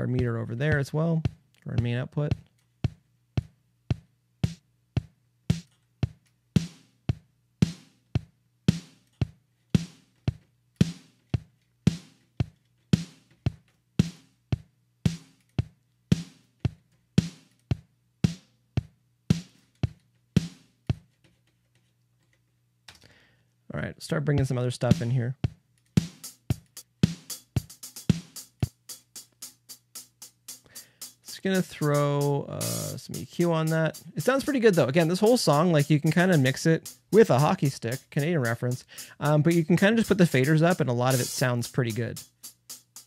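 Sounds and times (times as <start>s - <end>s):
steady beat of drum hits: 0.0s - 21.1s, 24.4s - 43.0s.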